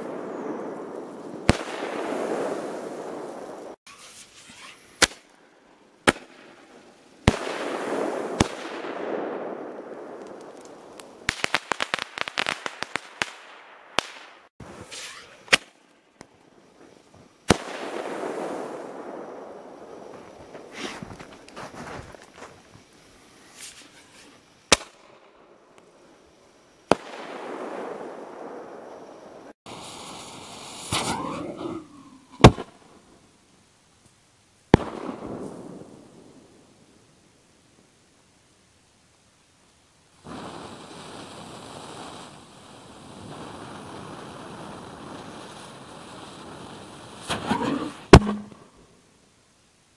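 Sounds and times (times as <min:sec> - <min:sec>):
crackling pops: 0:00.6 - 0:22.9, 0:23.6 - 0:25.9, 0:34.0 - 0:35.6, 0:47.2 - 0:48.9
shell bursts with rolling echo: 0:34.8 - 0:35.5, 0:48.1 - 0:48.9.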